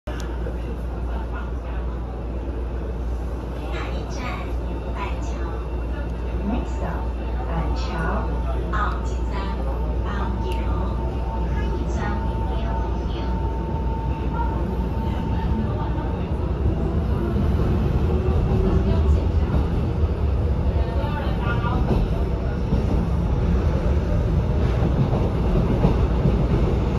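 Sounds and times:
train running noise: 0:00.1 - 0:26.9.

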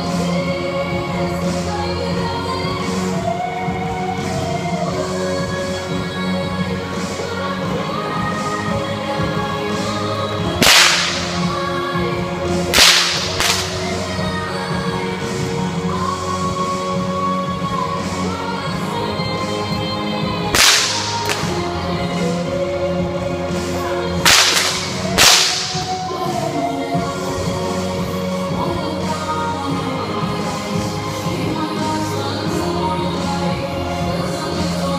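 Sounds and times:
bullwhip cracking: 0:10.6 - 0:11.8, 0:12.7 - 0:14.1, 0:20.5 - 0:21.8, 0:24.2 - 0:26.1.

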